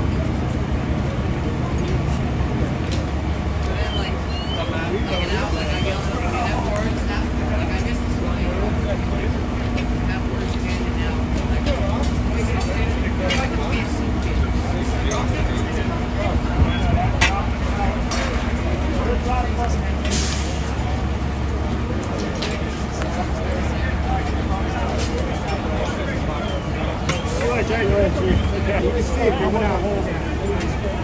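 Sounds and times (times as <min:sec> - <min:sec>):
diesel engines running: 0:00.0 - 0:31.0
indistinct voices: 0:00.0 - 0:31.0.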